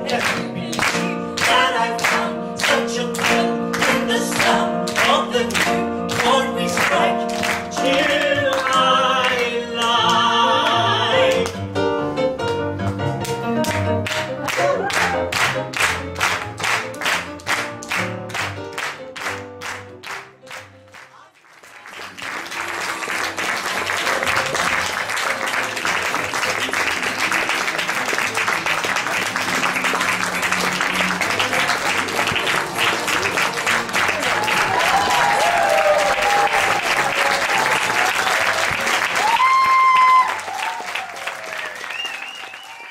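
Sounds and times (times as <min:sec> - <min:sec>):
audience applauding: 0:00.0 - 0:09.9, 0:13.2 - 0:42.9
piano playing: 0:00.0 - 0:21.2, 0:22.0 - 0:41.7
audience cheering: 0:14.4 - 0:15.5, 0:22.2 - 0:42.9.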